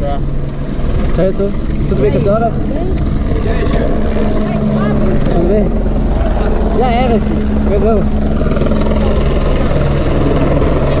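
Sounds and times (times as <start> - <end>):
low engine drone: 0.0 - 11.0
people talking: 1.2 - 5.8.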